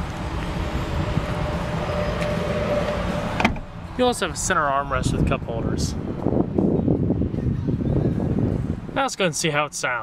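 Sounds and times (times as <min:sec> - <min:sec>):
seat cushion thump: 0:03.4 - 0:03.7.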